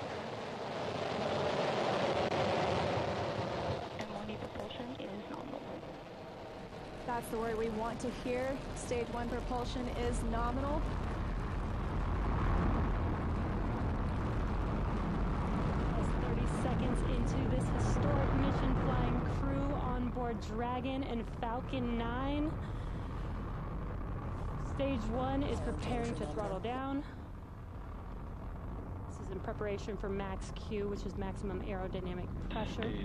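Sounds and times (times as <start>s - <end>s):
rocket engines deep rumble: 0.0s - 33.0s.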